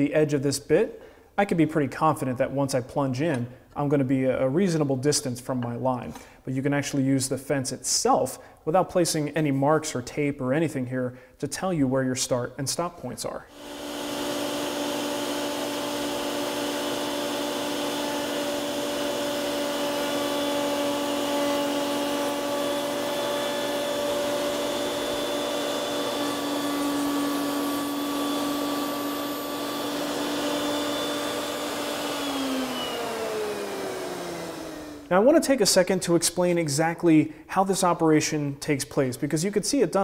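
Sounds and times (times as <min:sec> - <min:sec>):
router bit spinning down: 0:13.5 - 0:35.1
router motor whining: 0:13.5 - 0:35.1.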